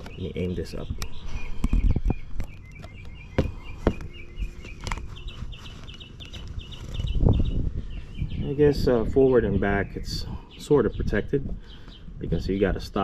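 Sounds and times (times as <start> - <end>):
bird chirping rapidly: 0.0 - 12.7
sharp handling knocks: 2.8 - 5.0.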